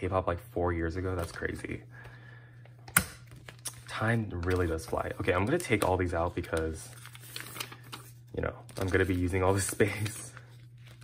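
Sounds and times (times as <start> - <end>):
plastic sleeve pages clicking: 2.9 - 11.0.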